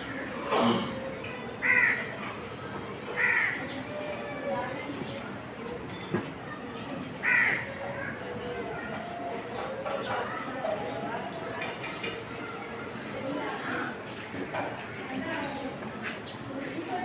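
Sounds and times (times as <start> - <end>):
distant voices: 0.0 - 17.0.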